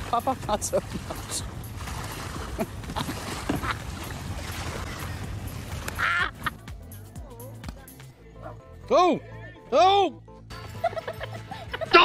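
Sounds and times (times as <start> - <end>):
water splashing and churning: 0.0 - 7.0.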